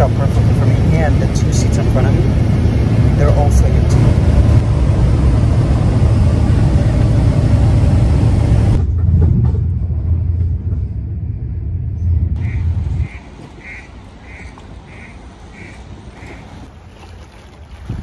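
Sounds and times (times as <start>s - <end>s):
airliner cabin engine drone: 0.0s - 16.9s
moving train rumble: 0.0s - 18.0s.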